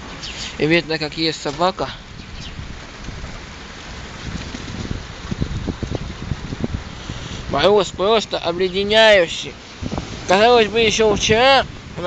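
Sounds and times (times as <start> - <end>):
steady outdoor hiss: 0.0 - 12.0
wind rumbling on microphone: 0.0 - 12.0.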